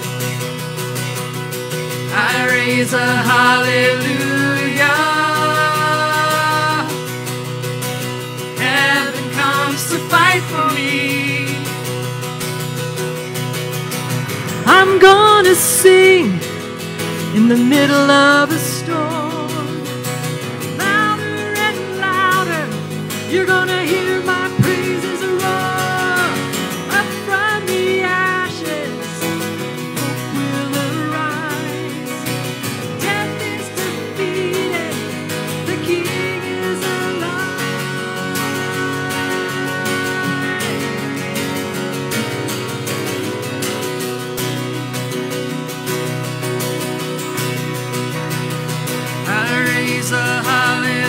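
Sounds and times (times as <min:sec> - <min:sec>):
acoustic guitar: 0:00.0 - 0:51.0
women singing: 0:02.1 - 0:07.0, 0:08.6 - 0:11.8, 0:17.4 - 0:19.8, 0:23.3 - 0:29.0, 0:30.0 - 0:32.3, 0:33.0 - 0:41.1
drums: 0:23.9 - 0:27.0.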